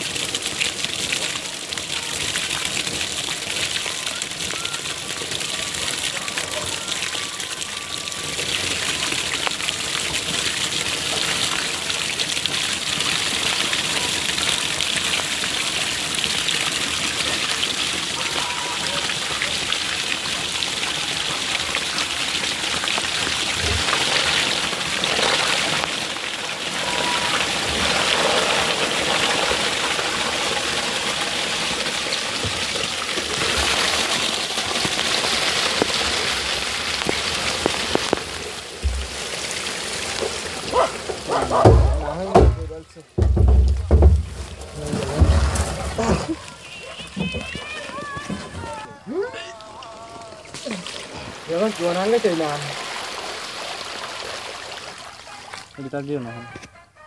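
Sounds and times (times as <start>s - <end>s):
water gushing from plastic drum: 0.0s - 56.5s.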